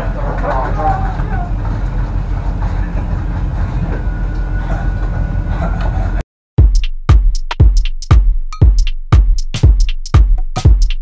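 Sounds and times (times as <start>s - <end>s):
men talking: 0.0s - 1.6s
low machinery rumble: 0.0s - 6.2s.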